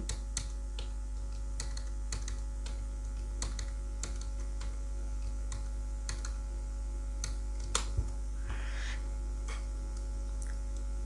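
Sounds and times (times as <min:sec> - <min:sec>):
keyboard typing: 0:00.0 - 0:06.4
low electrical hum: 0:00.0 - 0:11.0.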